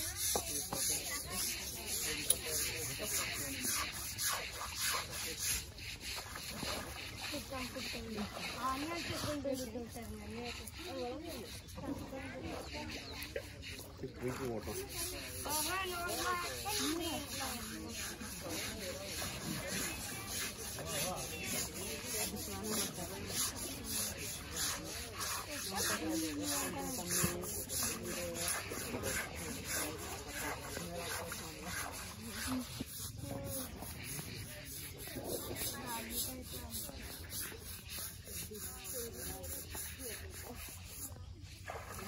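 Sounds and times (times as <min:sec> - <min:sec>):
faint voices: 0:00.0 - 0:42.0
rhythmic scrubbing of wet hide: 0:00.0 - 0:42.0.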